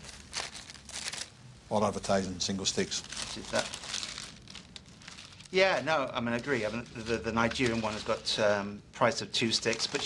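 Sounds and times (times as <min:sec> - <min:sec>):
paper rustling and crinkling: 0:00.0 - 0:01.3, 0:01.9 - 0:08.6, 0:09.3 - 0:10.0.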